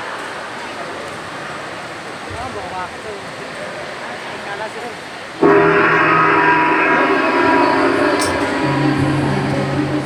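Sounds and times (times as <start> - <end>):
high hiss: 5.4 - 10.0
loud horn-like blare: 5.4 - 10.0.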